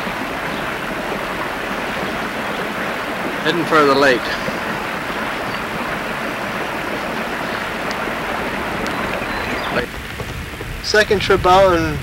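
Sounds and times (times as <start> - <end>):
boat motor droning: 0.0 - 11.0
water rushing: 0.0 - 12.0
wind on microphone: 0.0 - 12.0.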